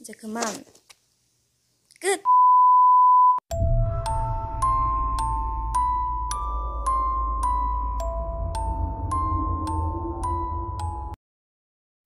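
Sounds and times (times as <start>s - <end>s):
music with chiming bell notes: 3.5s - 11.2s.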